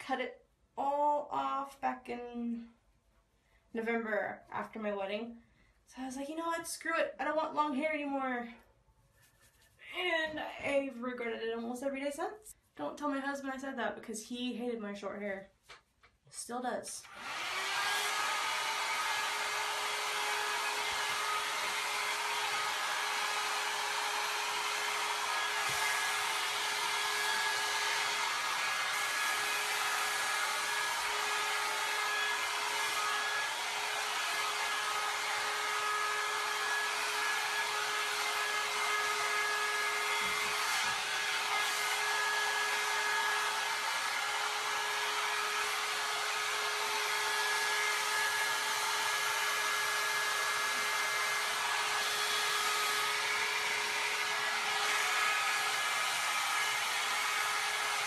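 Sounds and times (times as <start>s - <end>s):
hot air brush blowing: 17.1s - 58.0s.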